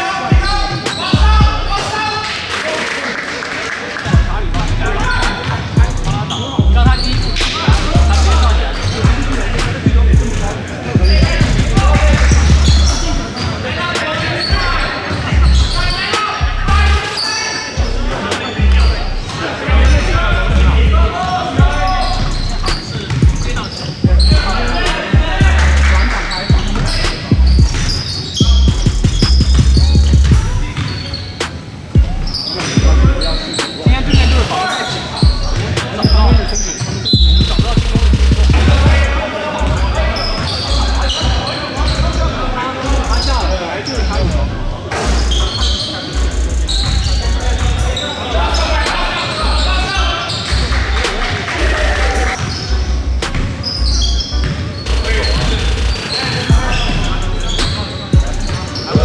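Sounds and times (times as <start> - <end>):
sneakers squeaking: 0.0 - 2.6, 4.0 - 59.0
players calling out: 0.0 - 59.0.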